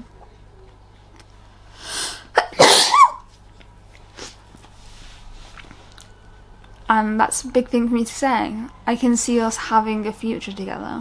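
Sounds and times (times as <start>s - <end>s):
woman sneezing: 1.9s - 3.2s.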